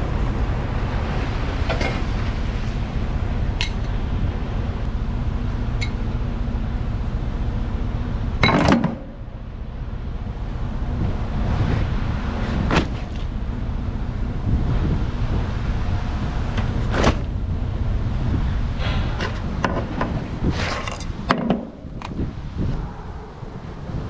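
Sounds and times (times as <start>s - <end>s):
steady low rumble: 0.0s - 24.0s
straps knocking and clanking: 19.2s - 22.1s.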